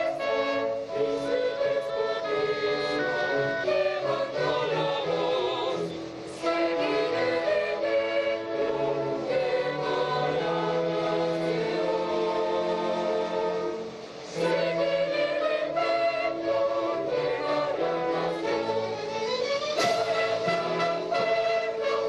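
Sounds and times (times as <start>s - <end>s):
orchestra playing: 0.0s - 22.0s
youth and children's choir singing: 0.0s - 22.0s.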